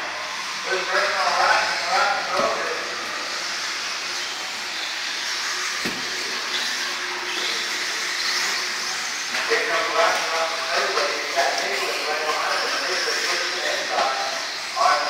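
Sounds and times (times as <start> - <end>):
rc car motors whining: 0.0 - 15.0.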